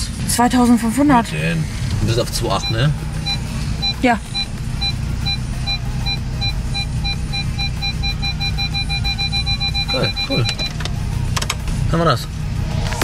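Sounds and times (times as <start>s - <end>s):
car engine idling: 0.0s - 13.0s
parking sensor beeping: 2.1s - 11.6s.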